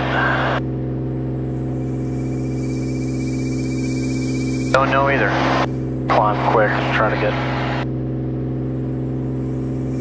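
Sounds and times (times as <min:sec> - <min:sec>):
aircraft engine and propeller droning: 0:00.0 - 0:10.0.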